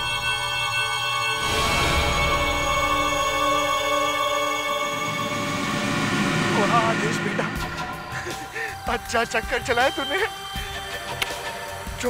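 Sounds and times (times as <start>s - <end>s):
man's voice: 6.4s - 10.5s.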